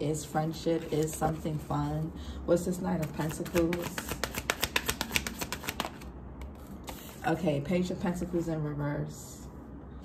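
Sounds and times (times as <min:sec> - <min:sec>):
cards being shuffled: 0:00.8 - 0:02.0, 0:03.0 - 0:07.3.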